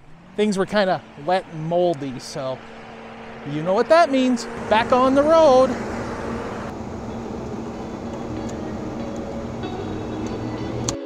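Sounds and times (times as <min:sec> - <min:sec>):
truck engine hum: 0:00.0 - 0:11.0
tyre and road noise: 0:00.0 - 0:11.0.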